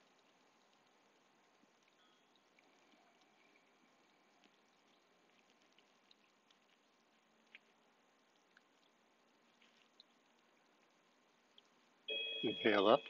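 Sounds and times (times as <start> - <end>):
faint ticks: 0.0 - 12.0
faint outdoor hiss: 0.0 - 13.0.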